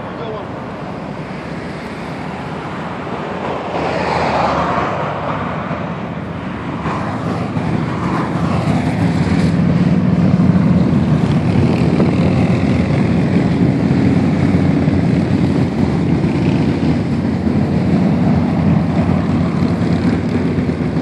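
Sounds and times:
cars passing with tyre noise: 0.0s - 21.0s
motorcycle engines droning: 0.0s - 21.0s.

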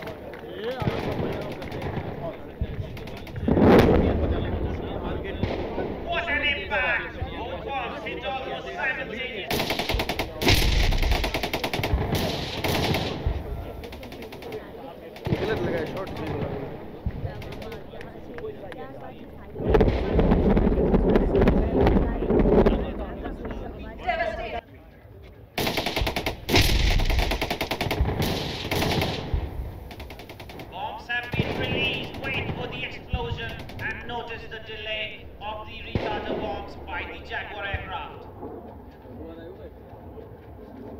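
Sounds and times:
automatic gunfire: 0.0s - 4.3s, 9.5s - 18.0s, 25.6s - 35.1s.

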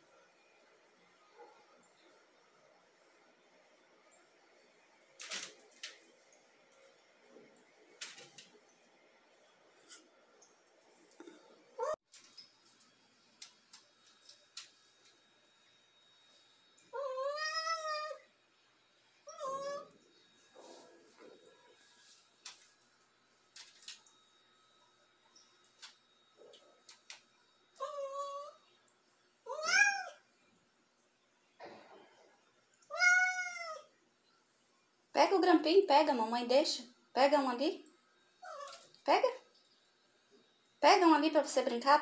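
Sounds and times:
cat meowing: 17.0s - 18.2s, 29.5s - 30.2s, 32.9s - 33.9s.

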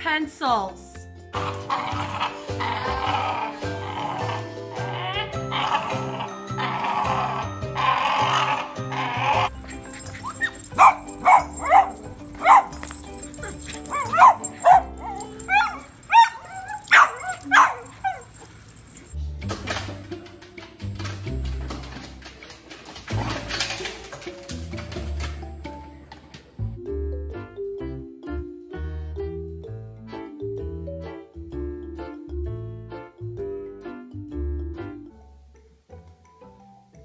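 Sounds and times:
background music: 0.0s - 37.0s
dog barking: 10.2s - 18.6s.

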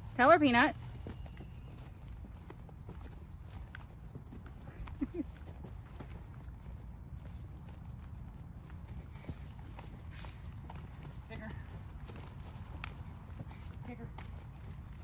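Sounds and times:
horse hoofbeats on grass: 0.0s - 15.0s.

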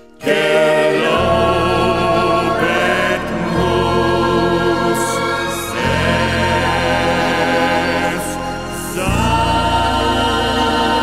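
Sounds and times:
choir singing held chords: 0.0s - 11.0s
instrumental accompaniment: 0.0s - 11.0s.

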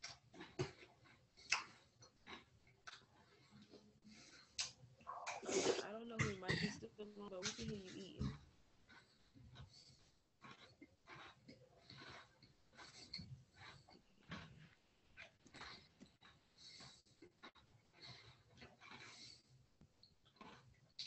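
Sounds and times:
person chewing: 0.0s - 6.1s, 7.5s - 21.0s.

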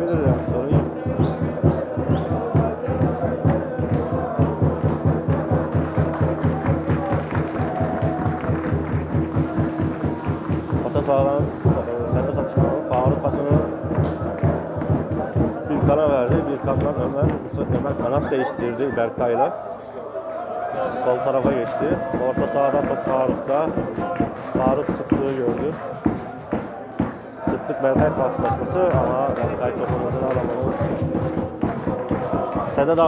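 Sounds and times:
fast drumbeat: 0.0s - 19.4s, 21.1s - 33.0s
crowd chanting: 0.0s - 33.0s.

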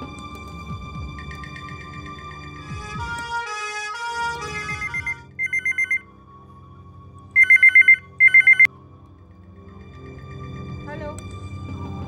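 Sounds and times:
telephone ringer trilling: 4.9s - 6.0s, 7.4s - 8.7s.

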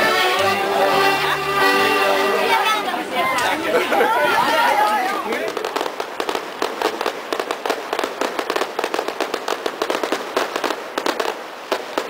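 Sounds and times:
accordion tune: 0.0s - 4.4s
crowd chattering: 0.0s - 8.8s.

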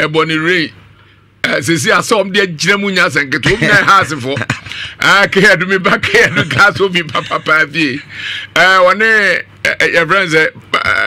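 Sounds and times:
man speaking: 0.0s - 0.8s, 1.4s - 11.0s.

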